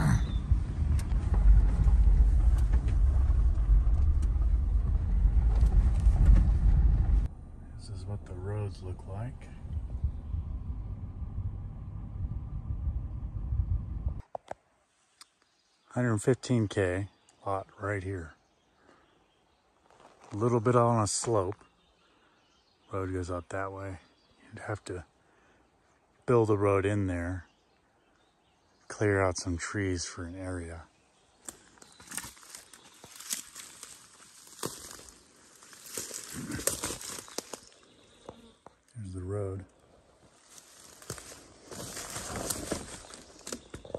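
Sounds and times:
vehicle rumbling on dirt road: 0:00.0 - 0:14.3, 0:30.4 - 0:43.9
footsteps through undergrowth: 0:19.8 - 0:20.4, 0:31.3 - 0:38.7, 0:39.9 - 0:43.9
twigs cracking: 0:31.4 - 0:39.0, 0:39.7 - 0:43.9.

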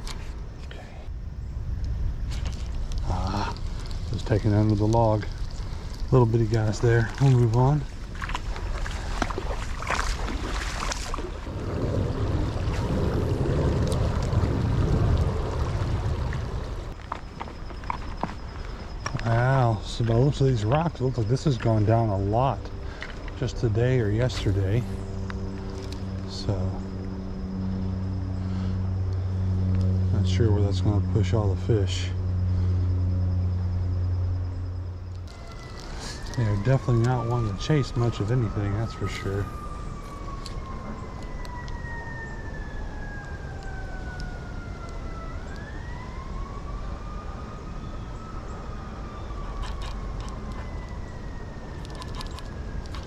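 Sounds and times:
low rumble: 0:00.0 - 0:17.0
low engine drone: 0:00.0 - 0:53.0
footsteps wading through rocky creek: 0:03.6 - 0:13.0.

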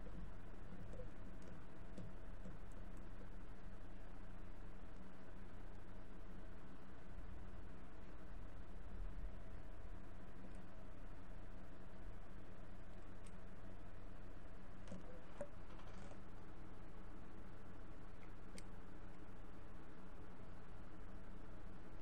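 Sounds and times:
low electrical hum and hiss: 0:00.0 - 0:22.0.

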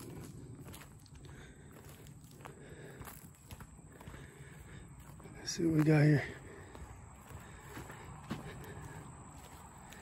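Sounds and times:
footsteps on grass and leaves: 0:00.0 - 0:10.0.

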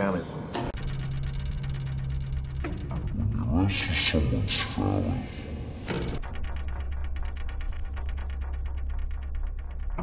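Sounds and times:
steady low hum: 0:00.4 - 0:10.0.

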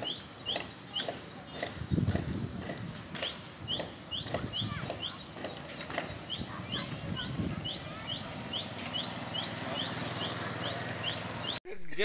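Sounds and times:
bird chirping: 0:00.0 - 0:11.6
outdoor background noise: 0:00.0 - 0:12.0.

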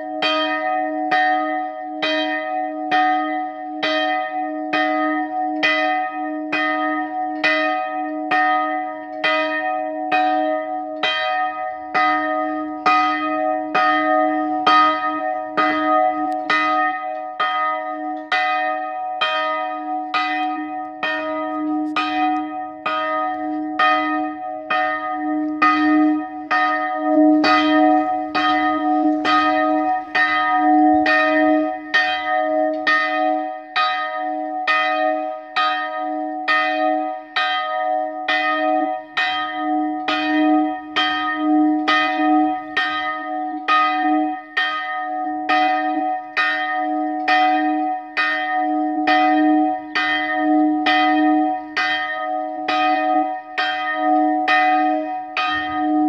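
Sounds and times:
church bell ringing: 0:00.0 - 0:56.0.

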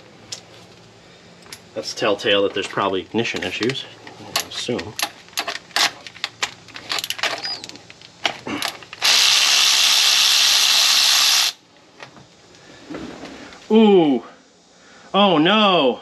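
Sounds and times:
clicks and knocks of tools: 0:03.3 - 0:09.0
cordless electric ratchet running: 0:08.9 - 0:11.6.

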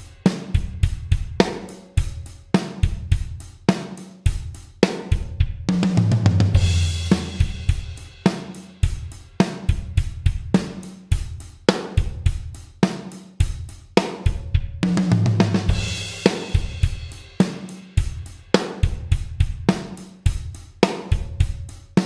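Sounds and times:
rock drum groove: 0:00.0 - 0:22.0
tom drum fill: 0:05.1 - 0:12.5, 0:14.3 - 0:21.7.

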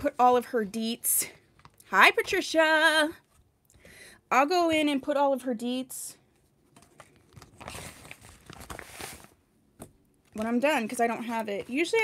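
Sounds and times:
crinkling and rustling: 0:00.0 - 0:03.7, 0:06.3 - 0:12.0.

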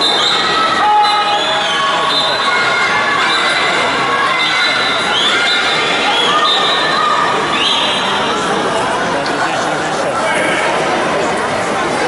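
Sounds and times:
high-pitched shouts: 0:00.0 - 0:08.2
crowd cheering: 0:00.0 - 0:08.8.

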